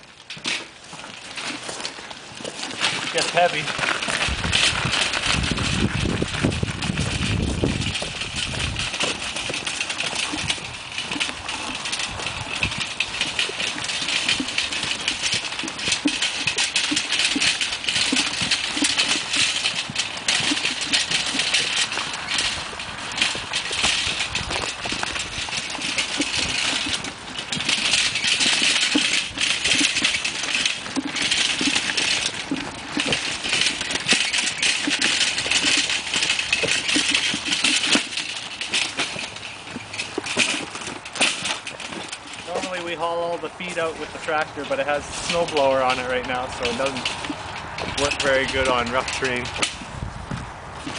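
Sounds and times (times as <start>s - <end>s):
garden wagon rattling: 0.0s - 50.9s.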